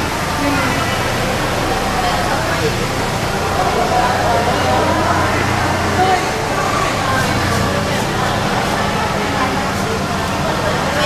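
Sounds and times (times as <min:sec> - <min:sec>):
car engine humming: 0:00.0 - 0:11.0
people talking and calling out: 0:00.0 - 0:11.0.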